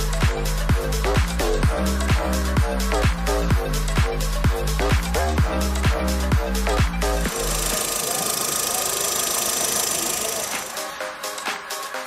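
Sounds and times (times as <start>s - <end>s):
backing music: 0.0s - 12.0s.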